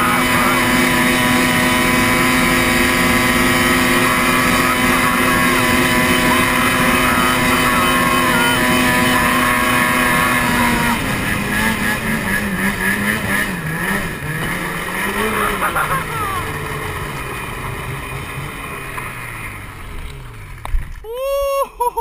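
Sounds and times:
snowmobile engine revving: 0.0 - 22.0.

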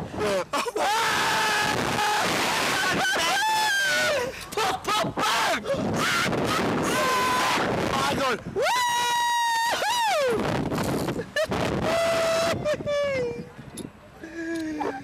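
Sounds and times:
men screaming and yelling: 0.2 - 10.5
wind rushing over microphone: 1.1 - 14.0.

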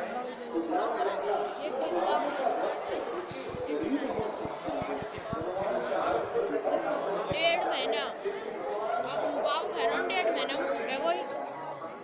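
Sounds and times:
overlapping chatter of voices: 0.0 - 12.0.

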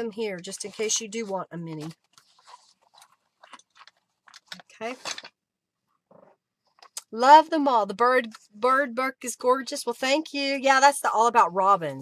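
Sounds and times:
paper rustling: 0.3 - 5.4.

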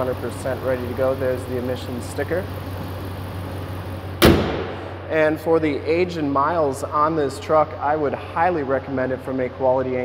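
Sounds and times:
engine idling: 0.0 - 10.0
truck hood slammed shut: 4.2 - 4.9.

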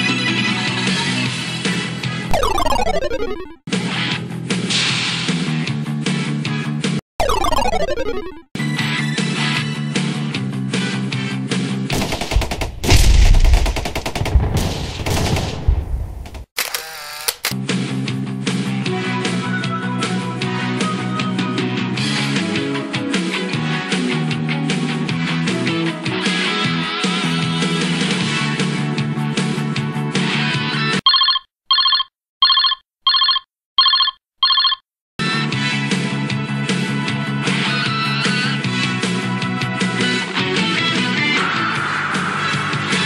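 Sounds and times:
music: 0.0 - 2.3, 3.7 - 7.0, 8.6 - 11.9, 17.6 - 30.9, 35.2 - 43.0
electronic ringing beeps: 2.3 - 3.6, 7.2 - 8.5, 31.1 - 34.8
machine-gun fire: 11.9 - 16.4.

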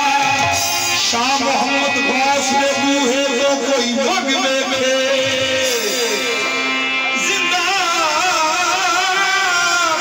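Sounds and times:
harmonium notes: 0.0 - 10.0
man singing long ornamented note: 0.0 - 10.0.

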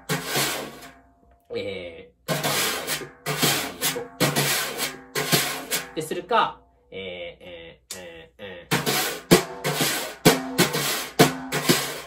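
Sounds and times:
brushes swishing on drum head: 0.0 - 0.9, 2.3 - 6.0, 8.8 - 12.0.

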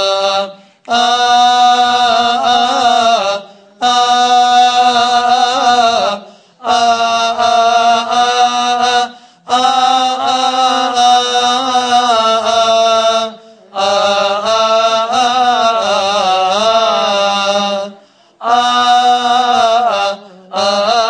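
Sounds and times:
men chanting a hymn: 0.0 - 21.0.

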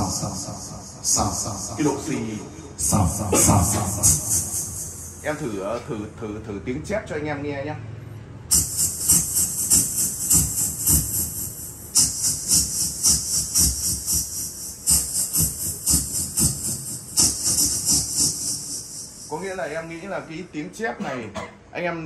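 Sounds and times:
man hissing into a microphone: 0.0 - 5.8.

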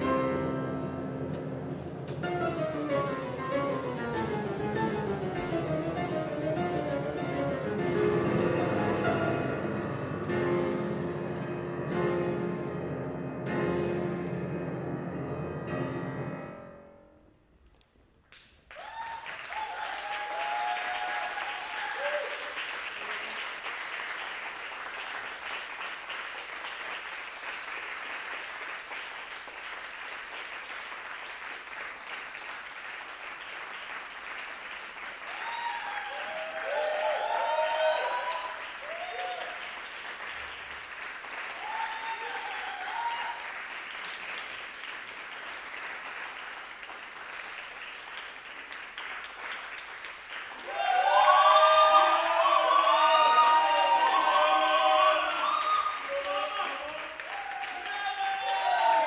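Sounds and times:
audience applause: 18.7 - 59.0.

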